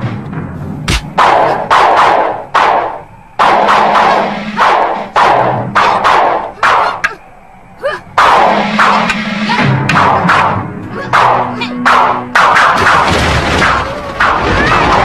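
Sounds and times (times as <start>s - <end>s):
fight whooshes and strikes: 0.0s - 7.2s, 8.2s - 13.0s.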